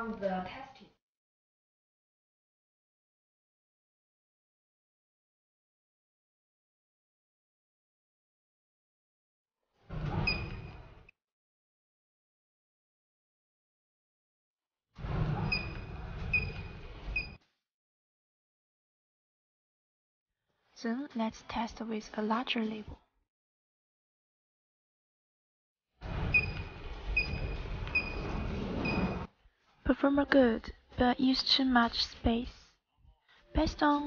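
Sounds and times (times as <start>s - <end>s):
low rumbling noise: 26.0s - 29.3s.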